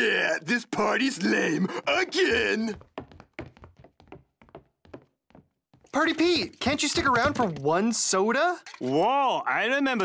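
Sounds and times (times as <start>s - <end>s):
shoe taps on hard floor: 2.7s - 5.8s.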